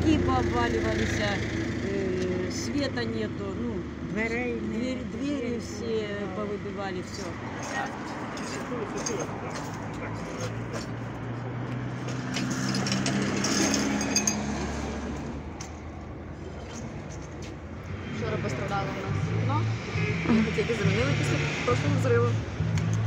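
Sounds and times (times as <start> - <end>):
street background hum: 0.0 - 23.0
faint voices: 18.0 - 22.4.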